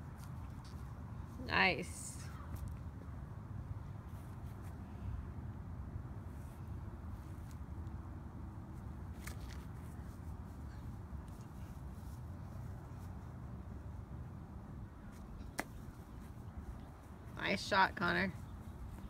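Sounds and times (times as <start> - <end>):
low outdoor rumble: 0.0 - 19.0.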